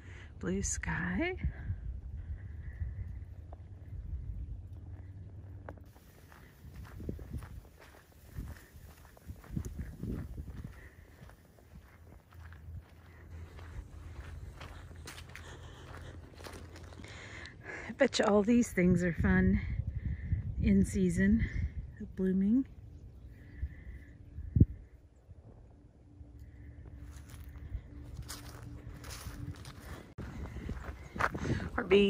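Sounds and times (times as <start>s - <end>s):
low steady rumble: 0.0s - 32.0s
footsteps on dirt trail: 4.8s - 18.3s, 26.8s - 32.0s.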